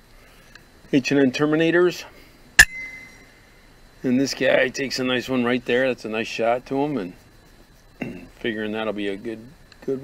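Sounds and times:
brief ringing tone: 2.6s - 3.3s.

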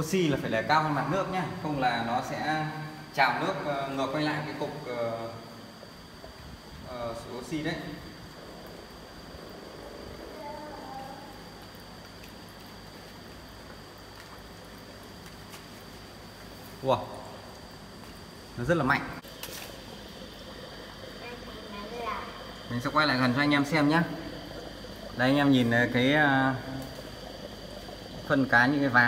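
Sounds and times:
aquarium air pump humming: 0.0s - 29.0s
air bubbling in water: 4.8s - 15.2s, 19.2s - 29.0s.

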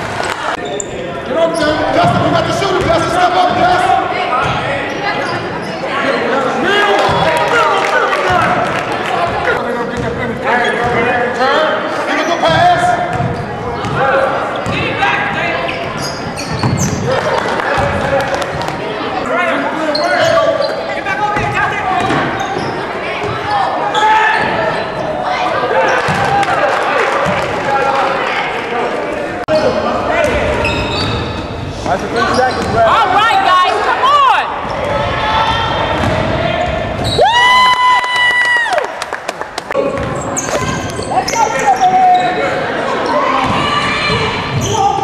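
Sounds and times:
chatter of people: 0.0s - 37.3s, 38.5s - 45.0s
basketball bouncing on wooden floor: 16.5s - 17.0s.

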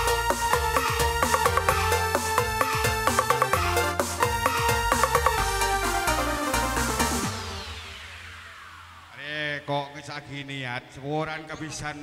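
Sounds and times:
electronic dance music: 0.0s - 10.5s
man speaking: 9.2s - 12.0s.

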